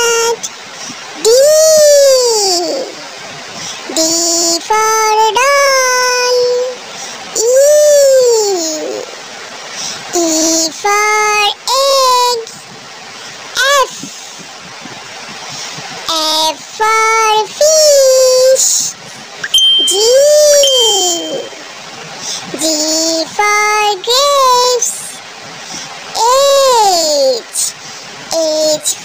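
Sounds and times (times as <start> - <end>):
child chanting sing-song: 0.0 - 9.2, 9.8 - 12.6, 15.9 - 21.6, 22.2 - 29.0.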